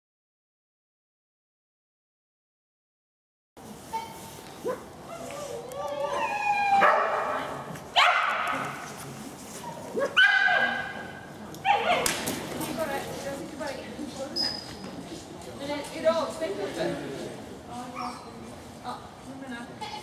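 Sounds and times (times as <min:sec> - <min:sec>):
dogs barking and yipping: 0:06.7 - 0:07.4.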